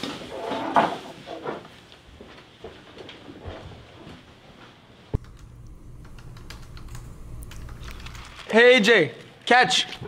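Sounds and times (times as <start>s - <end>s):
low room hum: 2.1s - 10.0s.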